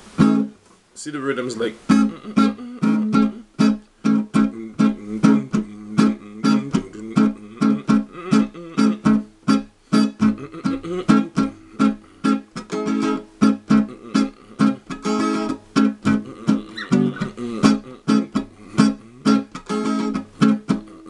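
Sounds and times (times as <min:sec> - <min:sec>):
guitar strumming choked strokes: 0:00.0 - 0:21.0.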